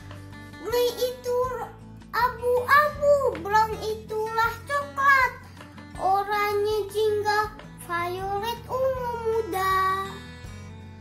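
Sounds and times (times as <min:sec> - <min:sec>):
background music: 0:00.0 - 0:11.0
child singing: 0:00.6 - 0:10.3.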